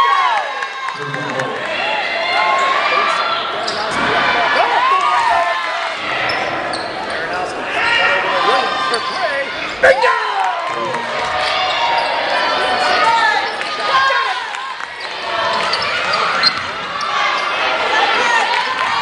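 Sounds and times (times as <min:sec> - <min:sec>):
players' voices echoing: 0:00.8 - 0:19.0
sneakers squeaking on hardwood floor: 0:06.2 - 0:07.1, 0:15.0 - 0:17.5.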